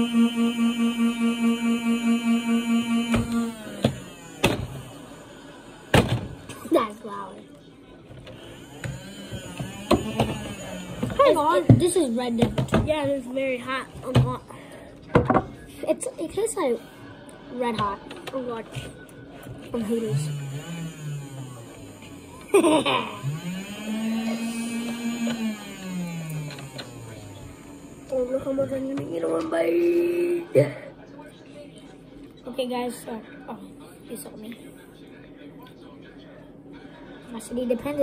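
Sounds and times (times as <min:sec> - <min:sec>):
boy humming: 0:29.0 - 0:30.7.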